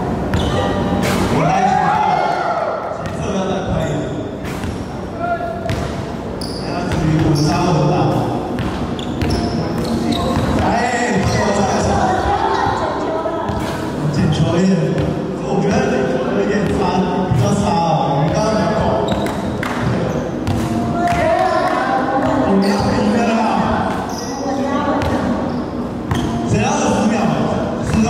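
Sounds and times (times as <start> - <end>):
basketballs bouncing on hardwood floor: 5.7 - 6.0, 8.5 - 11.5, 18.2 - 23.1, 26.1 - 26.4, 27.8 - 28.0
voices talking and calling: 18.2 - 28.0.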